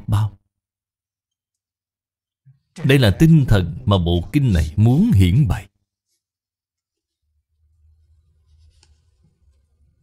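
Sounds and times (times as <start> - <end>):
paper rustling: 8.0 - 10.0.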